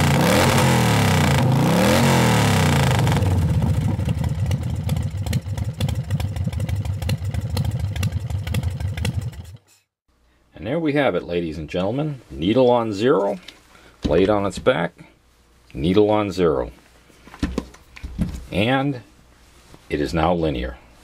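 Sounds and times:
engine revving: 0:00.0 - 0:09.6.

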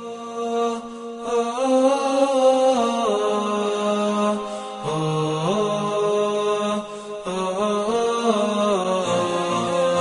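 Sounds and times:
person chanting unaccompanied: 0:00.0 - 0:10.0.

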